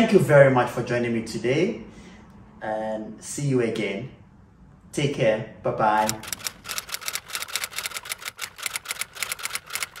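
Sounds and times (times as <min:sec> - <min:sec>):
typewriter keys clicking: 0:06.0 - 0:10.0.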